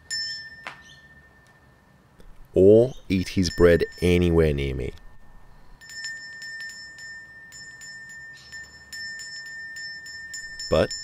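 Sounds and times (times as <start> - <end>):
metal hand bell ringing: 0.0 - 1.9, 3.3 - 11.0.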